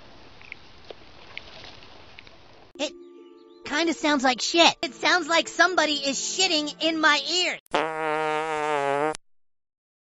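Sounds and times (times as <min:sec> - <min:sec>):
low-pitched fart: 0:07.7 - 0:09.2.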